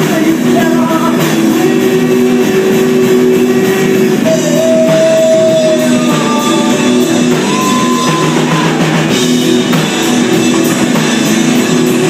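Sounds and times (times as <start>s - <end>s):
drums: 0.0s - 12.0s
electric guitar: 0.0s - 12.0s.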